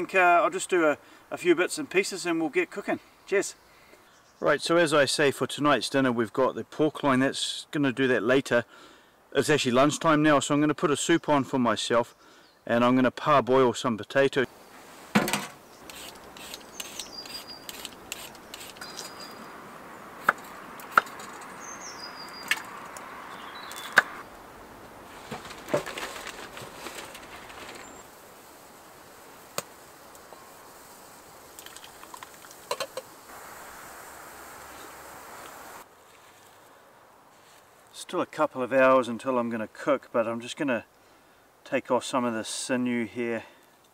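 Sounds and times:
peeler scraping potatoes: 0:15.8 - 0:19.3.

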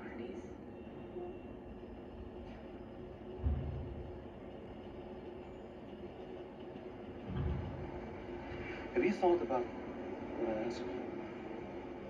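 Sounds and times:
television speaker hum: 0:00.0 - 0:12.0.

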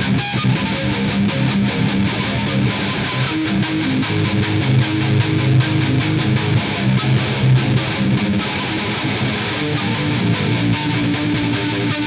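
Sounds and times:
distorted electric violin: 0:00.0 - 0:12.0.

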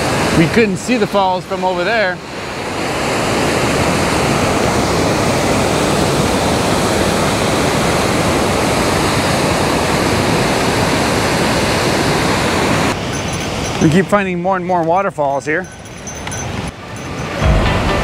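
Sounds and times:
waterfall rushing: 0:00.0 - 0:14.0.

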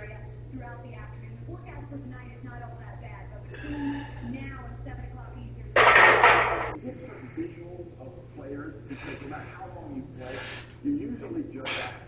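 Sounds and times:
barbell plates clattering on metal: 0:05.8 - 0:06.8.

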